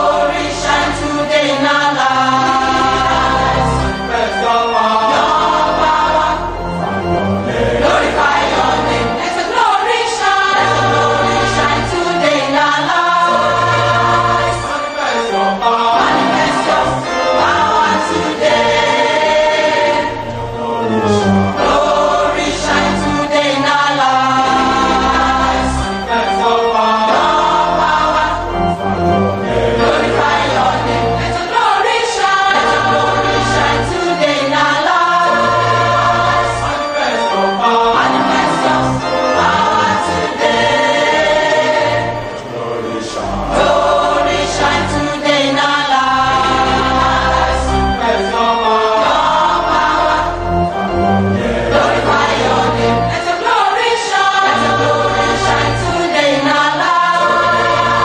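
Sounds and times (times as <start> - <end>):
gospel choir singing: 0.0 - 58.0
steady bass line: 27.0 - 31.4, 49.0 - 53.2.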